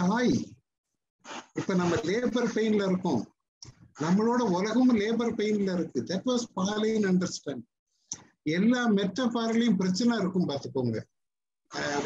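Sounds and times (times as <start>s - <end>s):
man speaking over video call: 0.0s - 0.6s, 1.5s - 12.0s.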